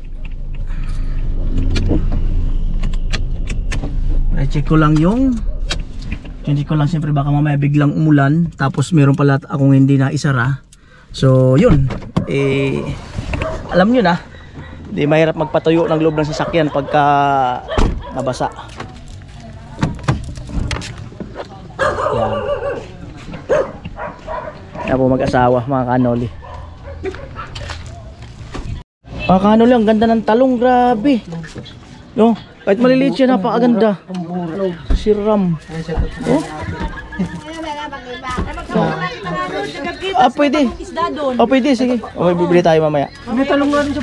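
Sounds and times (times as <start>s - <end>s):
car engine running: 0.0s - 8.9s
dog barking: 13.4s - 18.7s, 21.4s - 25.1s, 25.8s - 28.2s.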